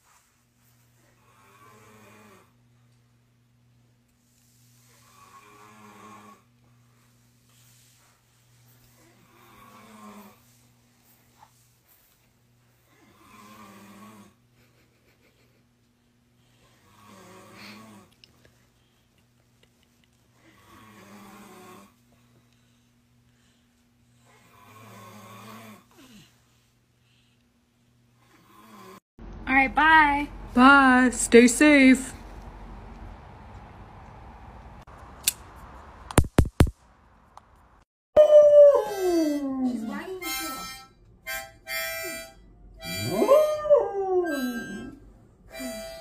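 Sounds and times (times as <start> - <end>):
man snoring: 1.3 - 2.6, 5.0 - 6.5, 9.2 - 10.4, 13.0 - 14.4, 16.8 - 18.1, 20.5 - 22.0, 24.3 - 26.2, 28.3 - 29.0
steady low hum: 29.2 - 37.8.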